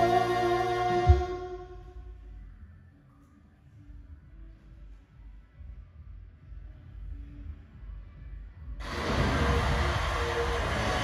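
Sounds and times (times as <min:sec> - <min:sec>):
music: 0:00.0 - 0:11.0
low rumble: 0:04.0 - 0:11.0
loud rushing sound: 0:08.8 - 0:11.0.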